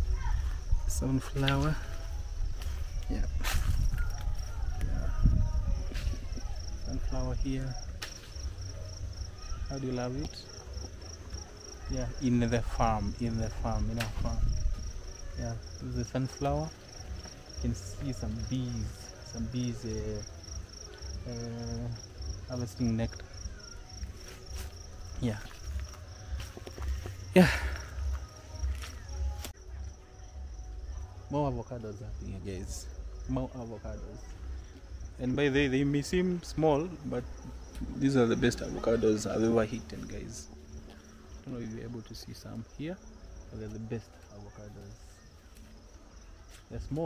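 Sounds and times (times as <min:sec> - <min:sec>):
low rumble on microphone: 0:00.0 - 0:09.2
leaves rustling against camera: 0:00.0 - 0:29.6
high insect trill: 0:00.0 - 0:47.0
handling rumble and footsteps: 0:23.1 - 0:29.6.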